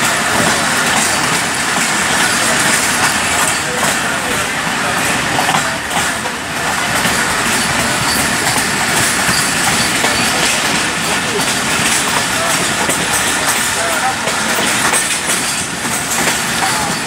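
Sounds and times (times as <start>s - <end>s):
train wheels rumbling on rails: 0.0s - 17.0s.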